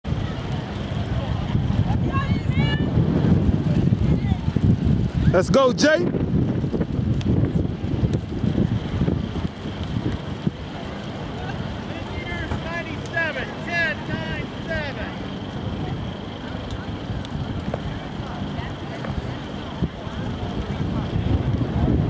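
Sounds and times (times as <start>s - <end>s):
people chattering: 0.0s - 6.0s, 7.3s - 22.0s
wind buffeting microphone: 0.0s - 22.0s.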